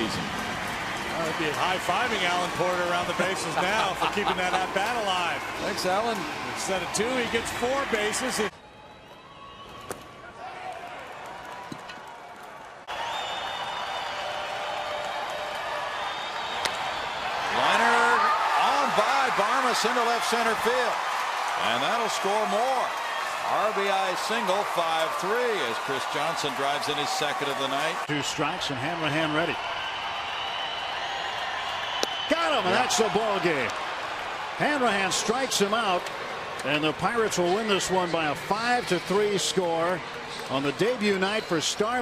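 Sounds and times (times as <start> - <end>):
stadium crowd murmur: 0.0 - 8.6
bat cracking ball: 16.6 - 16.8.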